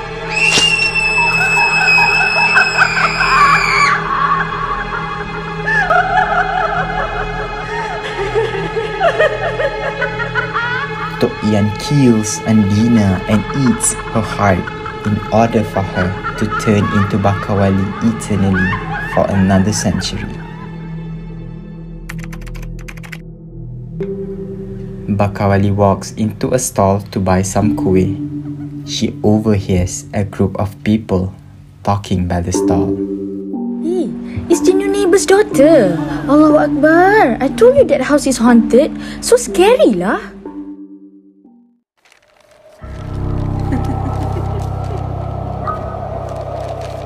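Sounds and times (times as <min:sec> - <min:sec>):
dark background music: 0:00.0 - 0:47.0
sharp hit: 0:00.3 - 0:01.0
shrill scream: 0:00.3 - 0:04.4
rapid keyboard typing: 0:22.1 - 0:23.2.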